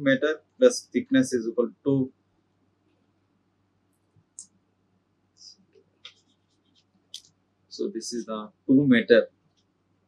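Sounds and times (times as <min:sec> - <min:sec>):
stylus scratching on tablet: 0:05.7 - 0:07.0.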